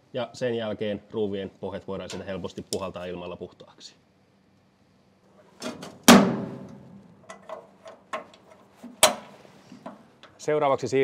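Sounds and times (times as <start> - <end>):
small clicks and knocks: 7.2 - 10.4.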